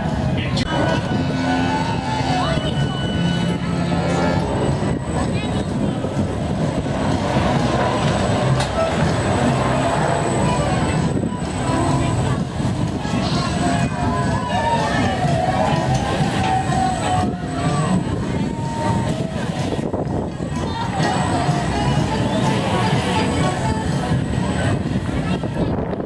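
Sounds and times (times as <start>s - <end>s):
people's voices: 0.0s - 26.0s
ride machinery rumbling: 0.0s - 26.0s.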